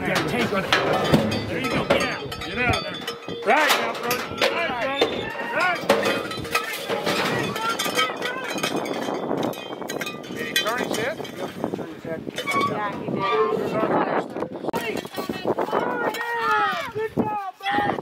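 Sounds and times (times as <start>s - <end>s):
cowbell clanking: 0.0s - 13.8s
people yelling: 3.4s - 8.8s, 15.7s - 18.0s.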